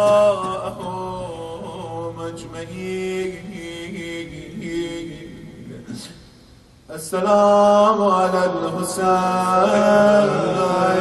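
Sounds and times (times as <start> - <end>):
man chanting a lament: 0.0 - 6.2, 6.9 - 11.0.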